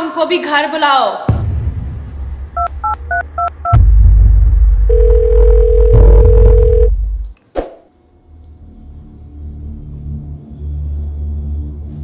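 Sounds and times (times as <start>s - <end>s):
deep rumbling background music: 1.3s - 7.3s, 8.1s - 12.0s
phone keypad dialling tones: 4.9s - 6.9s
phone ringing tone: 4.9s - 6.9s.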